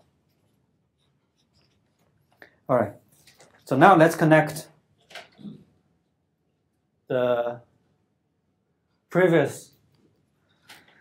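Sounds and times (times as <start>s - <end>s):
paper rustling: 0.2s - 2.4s, 3.0s - 3.8s.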